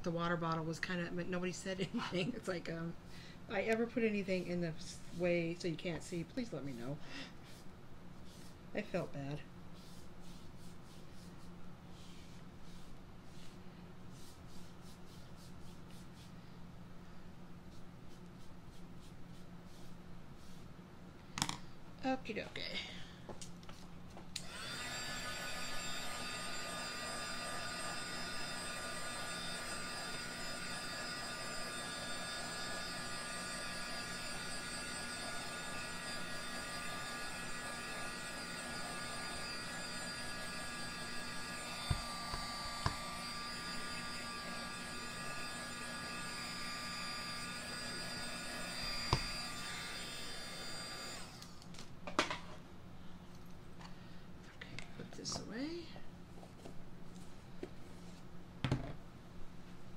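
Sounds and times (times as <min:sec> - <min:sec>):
heat gun running: 0:24.3 - 0:51.7.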